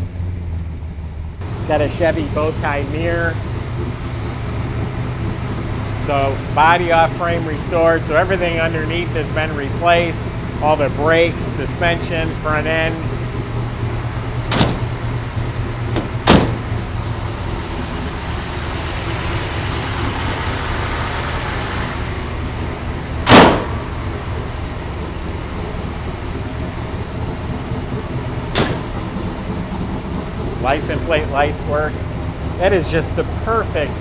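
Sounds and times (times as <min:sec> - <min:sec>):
car engine idling: 0:00.0 - 0:34.0
car door shutting: 0:14.4 - 0:15.2, 0:15.9 - 0:16.8, 0:23.2 - 0:23.8, 0:28.5 - 0:29.1
car hood slamming: 0:14.4 - 0:15.2, 0:15.9 - 0:16.8, 0:23.2 - 0:23.9, 0:28.5 - 0:29.1.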